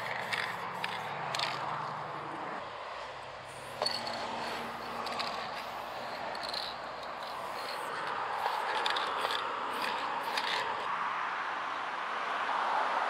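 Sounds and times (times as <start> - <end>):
spray paint can hissing: 0.0 - 2.5, 3.5 - 10.9.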